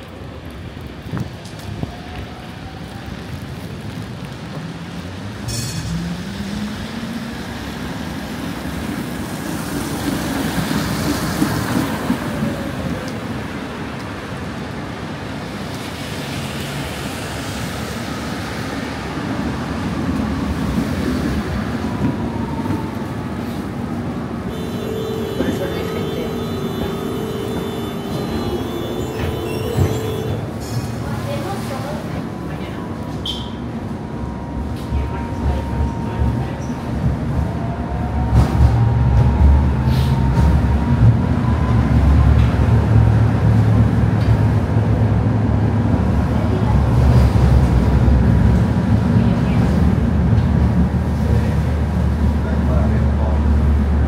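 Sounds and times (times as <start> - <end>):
tyres hissing on wet road: 0.1 - 21.8
tram motor whine: 21.0 - 30.9.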